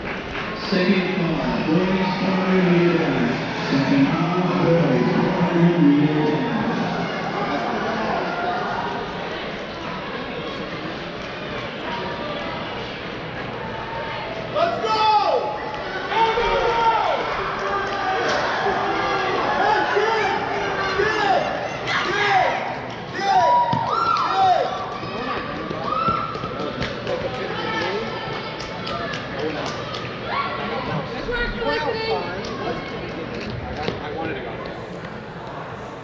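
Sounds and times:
crowd murmur echoing: 0.0 - 36.0.

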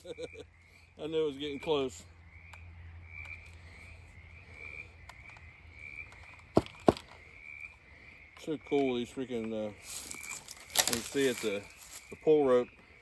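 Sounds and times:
sharp knocks: 6.5 - 7.2.

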